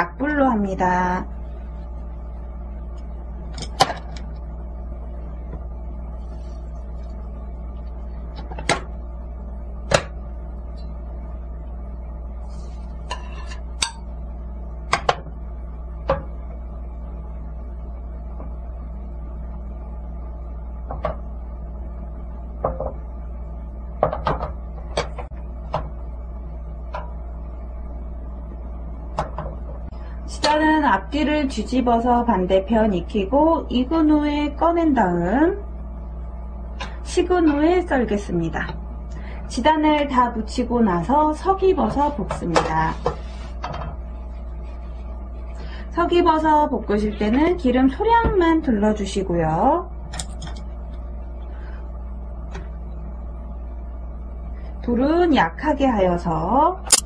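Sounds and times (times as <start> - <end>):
steady low hum: 0.0 - 57.0
metal spoon tapping bowls and pan: 13.1 - 14.1.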